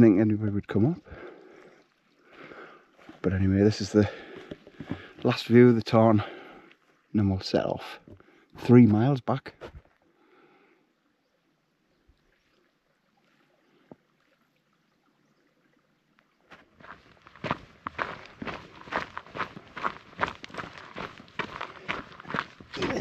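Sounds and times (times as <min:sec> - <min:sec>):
boots crunching on gravel: 0:04.0 - 0:05.4, 0:16.6 - 0:23.0.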